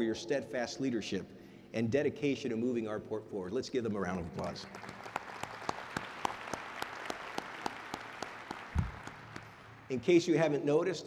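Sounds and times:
audience applauding: 4.4s - 10.0s
sharp close claps: 4.4s - 10.0s
low thump: 8.8s - 9.0s.

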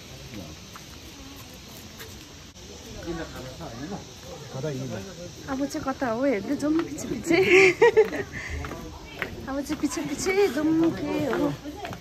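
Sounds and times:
high-pitched hiss: 0.0s - 12.0s
murmur of people talking: 0.0s - 12.0s.

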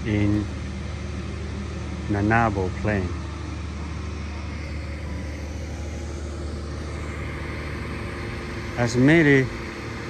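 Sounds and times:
diesel generator humming: 0.0s - 10.0s.

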